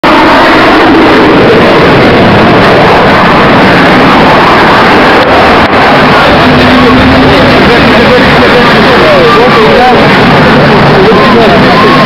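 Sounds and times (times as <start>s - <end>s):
fighter jet engines roaring: 0.0s - 12.0s.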